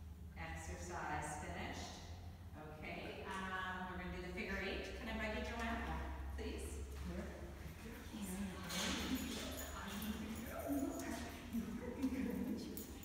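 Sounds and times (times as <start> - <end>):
indistinct voices in echoing hall: 7.1 - 13.0.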